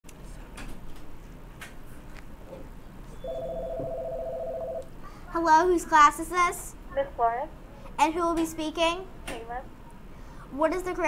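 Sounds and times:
telephone ringing: 0:03.2 - 0:04.8.

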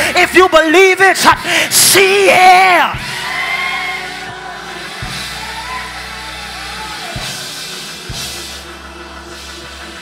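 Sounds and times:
band sustained chords: 0:03.0 - 0:10.0.

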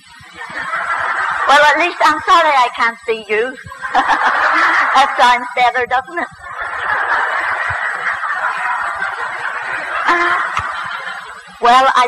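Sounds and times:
audience laughing: 0:00.0 - 0:02.5, 0:03.4 - 0:12.0.

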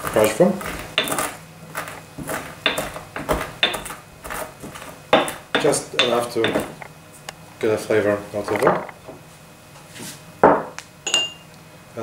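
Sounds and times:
clay mortar knocking on worktop: 0:00.0 - 0:06.8, 0:10.4 - 0:10.8
glass bowl clinking: 0:10.5 - 0:11.5.

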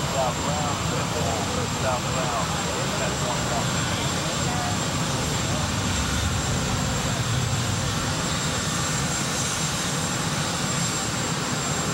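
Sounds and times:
aircraft engine roar: 0:00.0 - 0:11.9.

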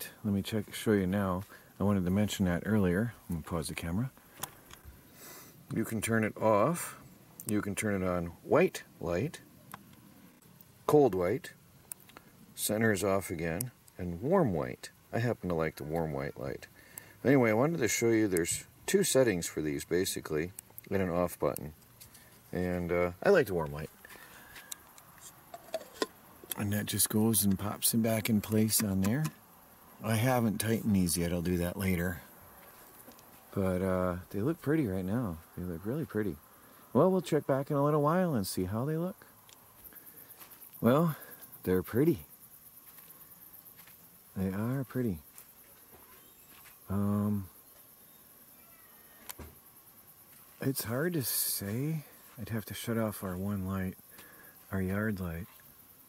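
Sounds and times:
faint insect chirping: 0:00.0 - 0:56.0.

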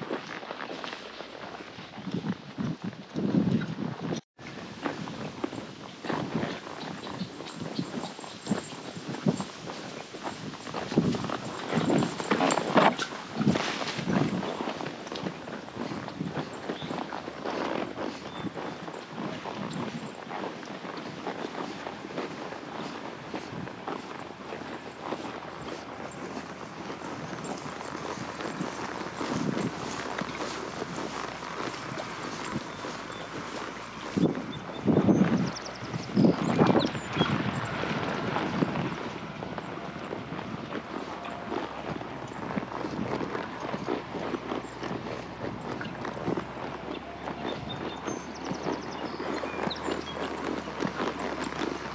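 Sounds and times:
muffled hoofbeats: 0:00.0 - 0:51.9.

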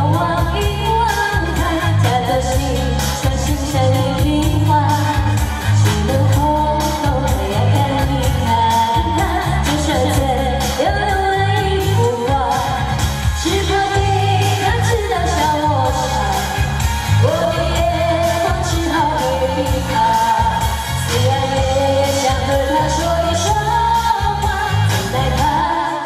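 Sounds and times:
pop backing track with bass: 0:00.0 - 0:26.0
woman singing into microphone: 0:00.0 - 0:26.0.

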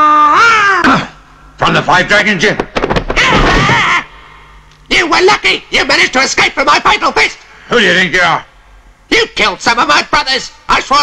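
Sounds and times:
man speaking: 0:01.6 - 0:02.6, 0:04.9 - 0:11.0.

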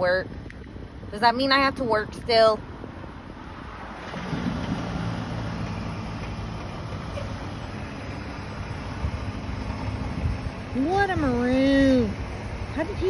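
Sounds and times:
outdoor noise: 0:00.0 - 0:13.0
truck diesel engine running: 0:04.0 - 0:13.0.

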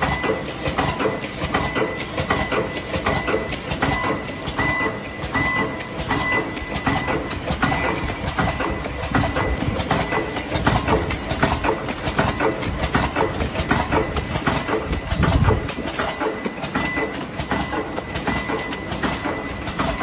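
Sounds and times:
packing machine clattering: 0:00.0 - 0:20.0
steady mechanical noise: 0:00.0 - 0:20.0.

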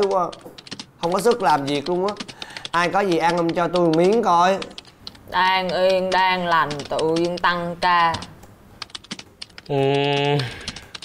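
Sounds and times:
keyboard typing clicks: 0:00.0 - 0:11.0
man yawning: 0:09.7 - 0:10.8.

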